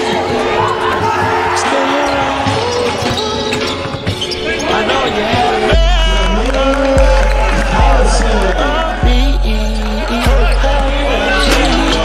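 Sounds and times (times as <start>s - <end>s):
music with heavy bass and vocals: 0.0s - 12.0s.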